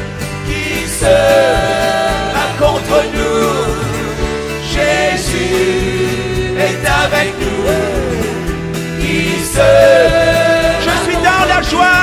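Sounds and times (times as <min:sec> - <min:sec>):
bass guitar: 0:00.0 - 0:12.0
drums: 0:00.0 - 0:12.0
keyboard: 0:00.0 - 0:12.0.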